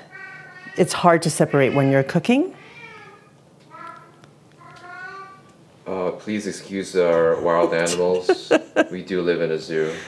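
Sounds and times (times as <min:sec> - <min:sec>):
cat meowing faintly: 0:00.0 - 0:05.4.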